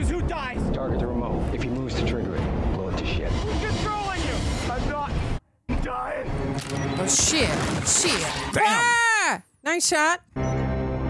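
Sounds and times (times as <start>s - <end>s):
film dialogue: 0.0s - 11.0s.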